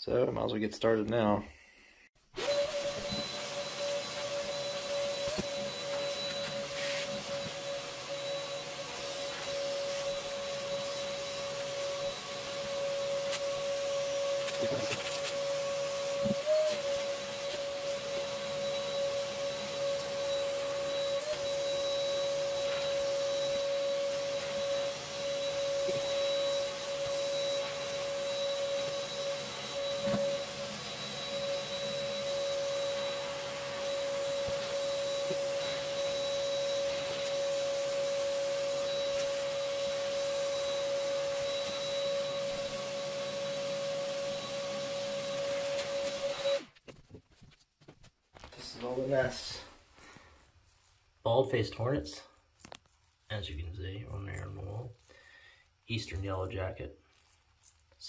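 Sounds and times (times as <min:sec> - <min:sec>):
vacuum whining: 0:02.3 - 0:46.8, 0:48.5 - 0:50.3.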